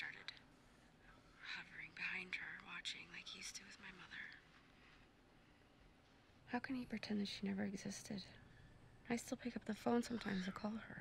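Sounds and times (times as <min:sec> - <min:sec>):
woman speaking quietly: 0:00.0 - 0:00.4, 0:01.4 - 0:04.4, 0:09.1 - 0:11.0.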